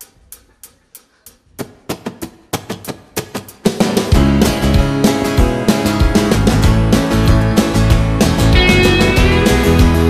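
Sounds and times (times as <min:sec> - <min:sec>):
steady ticking beat: 0:00.0 - 0:10.0
full band with drum kit: 0:03.5 - 0:10.0
chords on the beat: 0:03.6 - 0:10.0.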